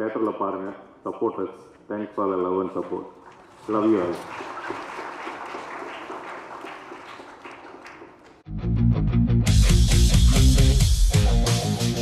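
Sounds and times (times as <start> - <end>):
audience applauding: 3.2 - 8.4
loud guitar music with heavy bass: 8.5 - 12.0.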